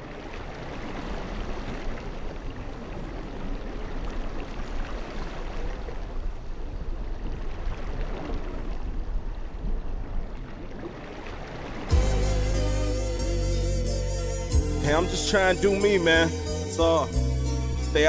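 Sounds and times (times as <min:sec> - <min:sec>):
small waves lapping on sand: 0:00.0 - 0:12.0.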